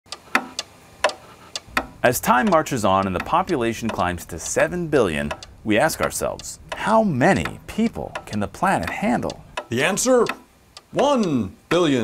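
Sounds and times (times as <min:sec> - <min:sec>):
clock ticking: 0:00.1 - 0:12.0.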